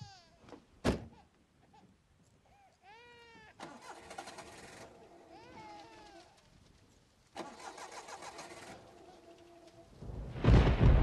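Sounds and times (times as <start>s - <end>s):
car starter motor cranking: 3.6s - 5.0s, 7.4s - 8.8s.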